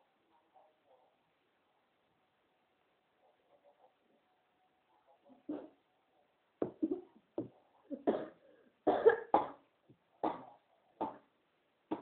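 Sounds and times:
woman coughing: 0:07.9 - 0:09.6.

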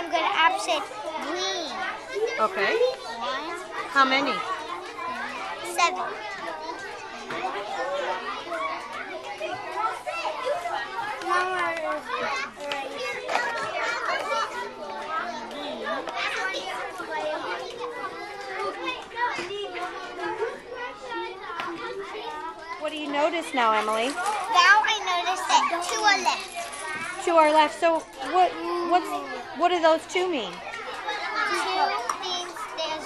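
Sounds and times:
children chattering: 0:00.0 - 0:33.0.

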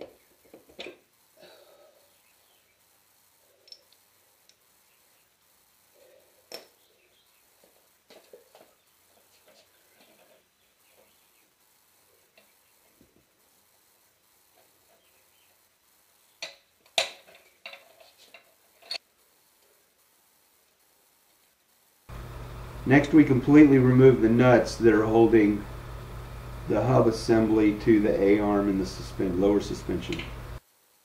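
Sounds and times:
metal tools clinking and tapping: 0:03.6 - 0:04.0, 0:16.4 - 0:19.0.

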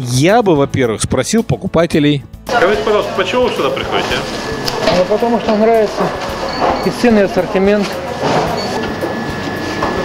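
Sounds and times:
indistinct voices: 0:02.5 - 0:10.0
thin high whine: 0:02.5 - 0:10.0.

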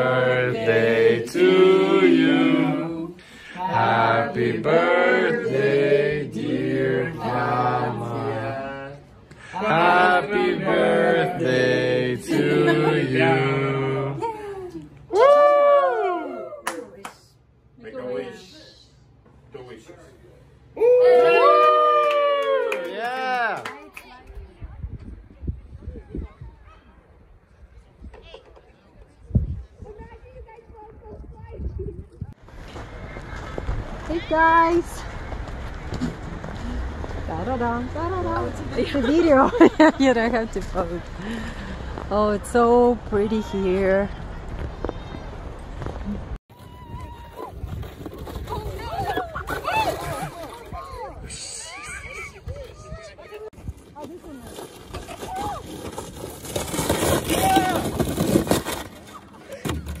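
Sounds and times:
steady outdoor noise: 0:00.0 - 1:00.0
plastic sled sliding on snow: 0:32.4 - 0:39.4, 0:44.5 - 0:51.4, 0:53.6 - 1:00.0.

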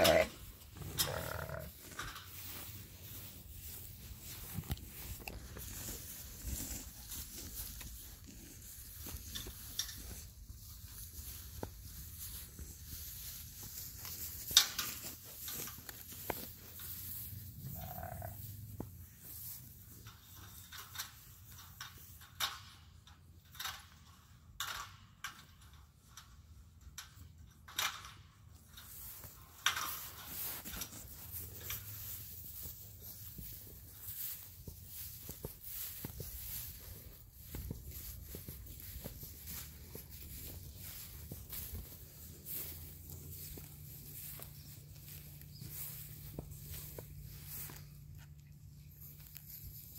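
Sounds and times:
sheep jostling: 0:00.0 - 0:22.2, 0:28.8 - 0:49.9
soft rustles: 0:00.1 - 0:22.3, 0:28.6 - 0:49.9.

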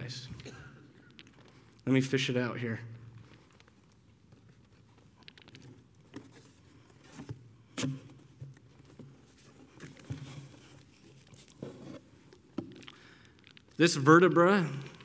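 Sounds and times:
packing material rustling: 0:08.6 - 0:13.8.

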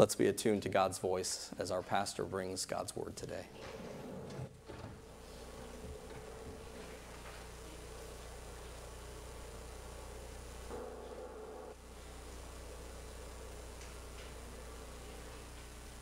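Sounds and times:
low steady hum: 0:03.3 - 0:16.0.

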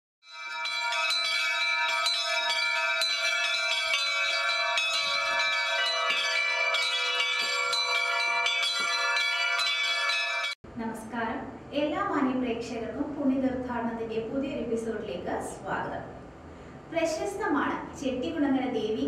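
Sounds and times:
metal temple bells ringing: 0:00.2 - 0:10.6.

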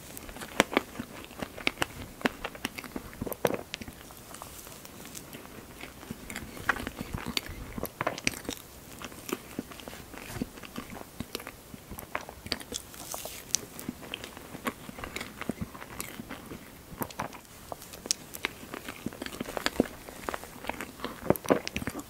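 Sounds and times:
close chewing with wet mouth clicks: 0:00.1 - 0:22.0.

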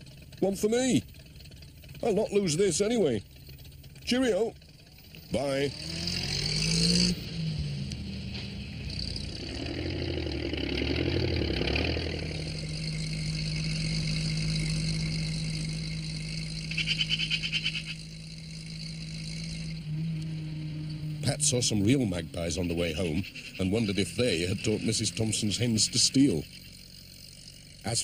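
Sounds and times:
tractor and van engines: 0:00.0 - 0:28.0.

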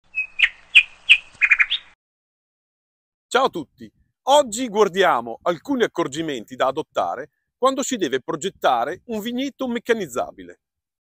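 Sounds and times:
bird chirping: 0:00.0 - 0:02.0.

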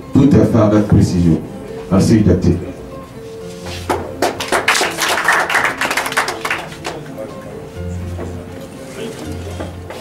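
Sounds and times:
group of people clapping: 0:03.8 - 0:07.3.

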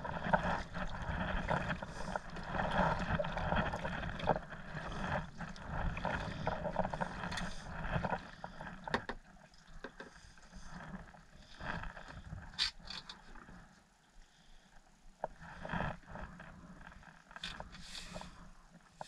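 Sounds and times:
kayak paddle pulling through water: 0:00.0 - 0:13.6, 0:15.2 - 0:19.0
water rippling along hull: 0:00.0 - 0:19.0.

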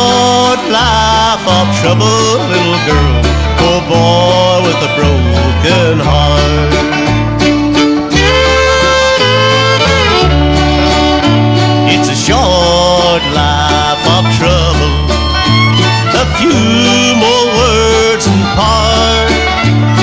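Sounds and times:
fiddle playing lead melody: 0:00.0 - 0:20.0
string band rhythm with bass: 0:00.0 - 0:20.0.

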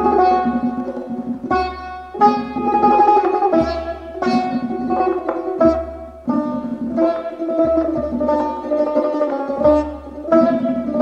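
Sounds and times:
hand drum: 0:00.0 - 0:11.0
plucked lute melody: 0:00.0 - 0:11.0.

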